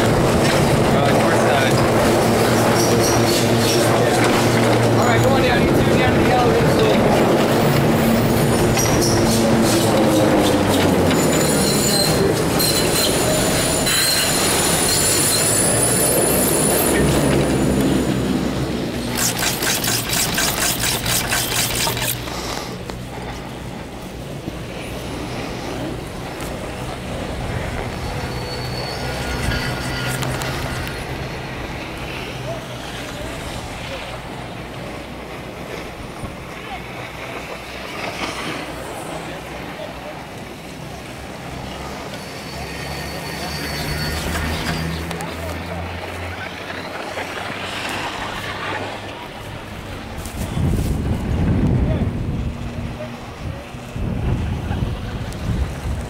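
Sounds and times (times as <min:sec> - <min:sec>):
chairlift cable rush: 0:00.0 - 0:56.0
fast run of clicks: 0:19.1 - 0:22.3.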